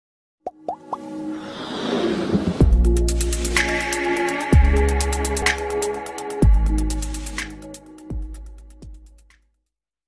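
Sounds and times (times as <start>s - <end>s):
intro music: 0.6s - 9.3s.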